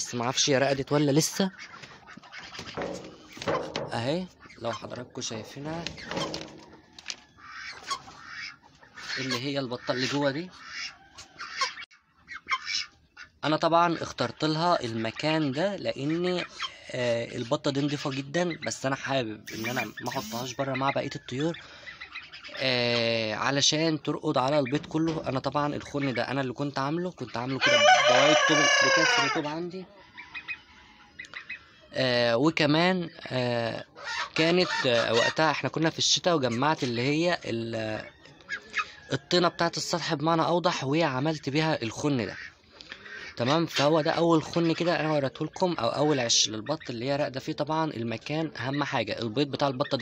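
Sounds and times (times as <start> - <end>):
birds making soft low calls: 1.2 - 23.2
faint bird chirps: 19.4 - 22.6.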